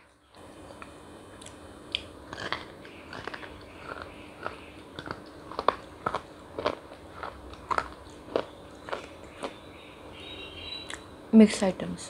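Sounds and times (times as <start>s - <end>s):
chocolate crunching and chewing: 0.0s - 9.7s.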